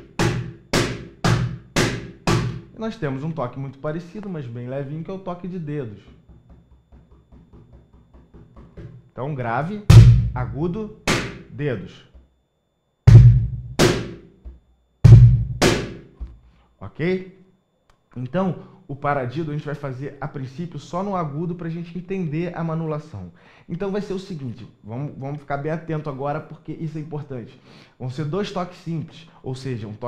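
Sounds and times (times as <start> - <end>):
cajon slap tone strokes: 0.0 - 2.8, 6.1 - 9.1, 9.9 - 11.5, 13.1 - 16.5.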